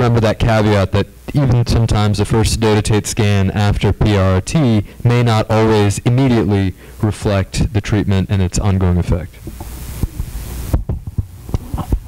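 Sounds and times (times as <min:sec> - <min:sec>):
faint hiss: 0:00.0 - 0:12.0
low steady hum: 0:00.0 - 0:12.0.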